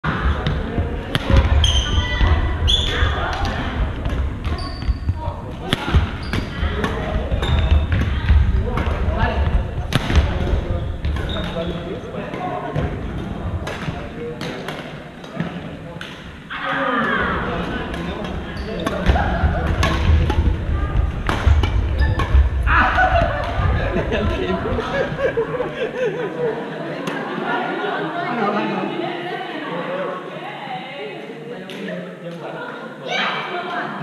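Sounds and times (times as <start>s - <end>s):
shoe squeaks: 1.6s - 3.2s, 4.5s - 5.2s, 6.1s - 6.8s, 7.4s - 7.9s, 10.8s - 11.9s, 18.5s - 19.0s, 21.9s - 22.4s
rackets striking shuttlecock: 17.9s - 24.4s.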